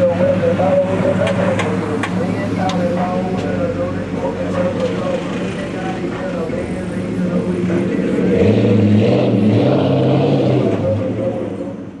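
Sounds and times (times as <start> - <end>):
pickup truck engine revving: 0.0 - 11.8.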